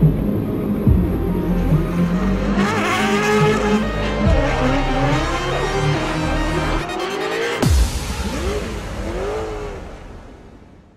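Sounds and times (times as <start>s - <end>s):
car engine revving: 0.0s - 10.7s.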